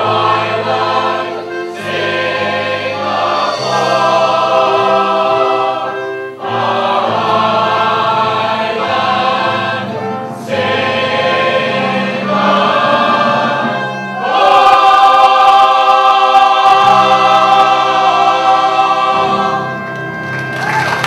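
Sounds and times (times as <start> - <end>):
chorus singing together: 0.0 - 20.3.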